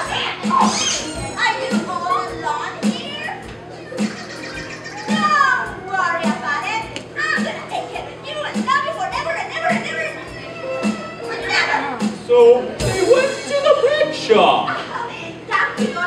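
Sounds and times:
children's voices chattering: 0.0 - 12.2
background music with steady beat: 0.0 - 14.8, 15.4 - 16.0.

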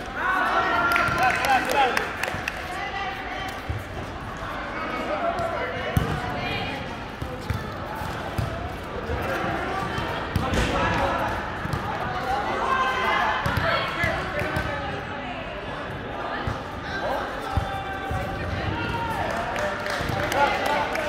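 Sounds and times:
players' scattered voices: 0.0 - 21.0.

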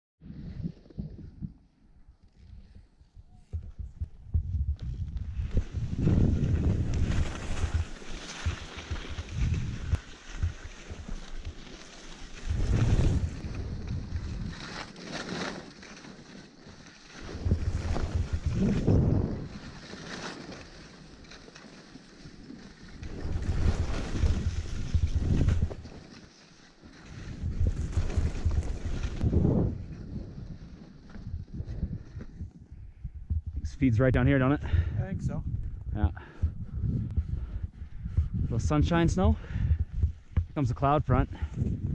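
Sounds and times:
wind on microphone: 0.2 - 11.6, 12.2 - 14.8, 17.2 - 19.8, 23.0 - 26.0, 27.1 - 41.9
skis scraping over snow: 4.9 - 32.6.

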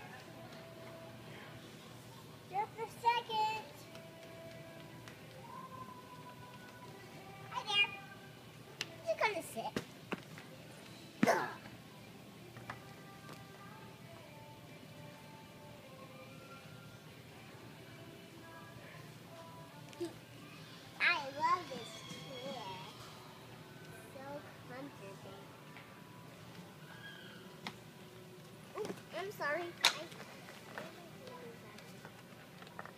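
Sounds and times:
toddler crying: 20.6 - 23.2
toddler squealing: 21.2 - 23.2, 26.9 - 27.4.

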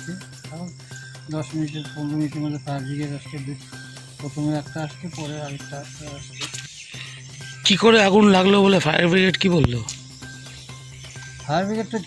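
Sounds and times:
man talking: 0.0 - 3.6, 4.2 - 6.6, 7.6 - 10.0, 11.5 - 12.0.

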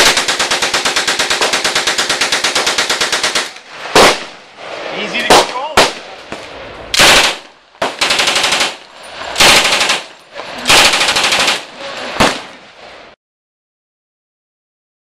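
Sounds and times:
submachine gun firing bursts: 0.0 - 4.3, 7.0 - 12.5.

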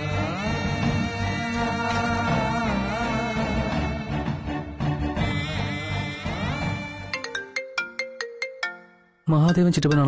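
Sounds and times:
phone ringtone melody: 6.8 - 10.0.

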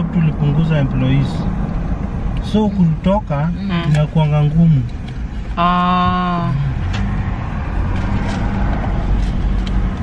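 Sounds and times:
car engine and tyres rumbling: 0.0 - 10.0.

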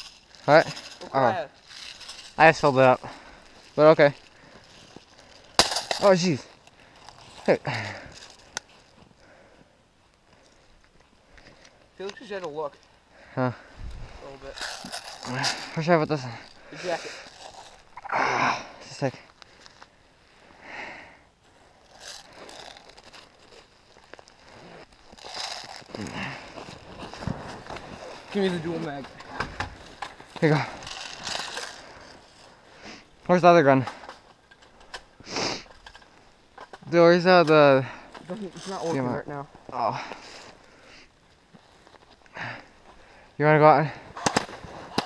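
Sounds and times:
snow crunching and scraping: 0.0 - 9.0, 13.7 - 20.6, 21.4 - 33.8, 36.9 - 40.9, 41.5 - 45.0.

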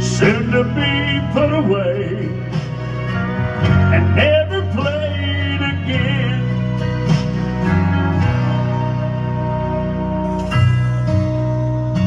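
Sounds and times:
country music: 0.0 - 12.0.

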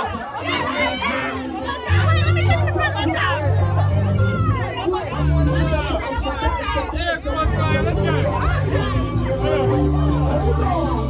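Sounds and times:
crowd talking and shouting: 0.0 - 11.0
party music with heavy bass: 0.0 - 11.0.

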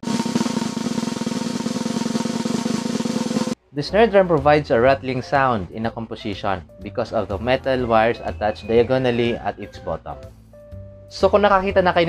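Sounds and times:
snare drum roll: 0.0 - 3.6.

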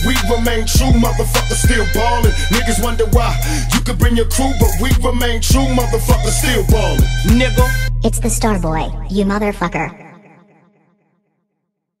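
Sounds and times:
echoing vocal tag: 0.0 - 7.8.

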